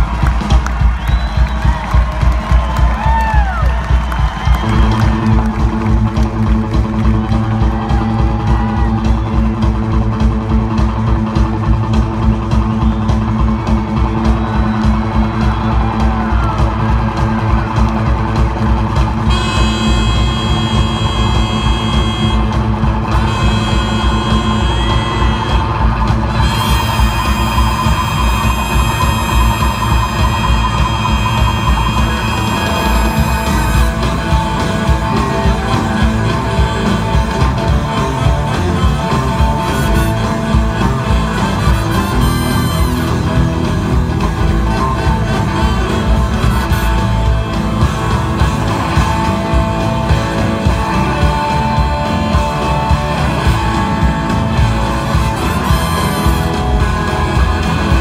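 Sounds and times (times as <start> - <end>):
crowd whooping: 0.0 - 58.0
rockabilly band playing: 0.0 - 58.0
long held high notes: 12.2 - 58.0.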